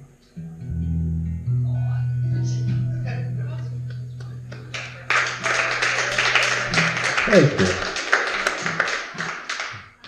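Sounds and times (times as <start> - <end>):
audience hand clapping: 3.8 - 10.0.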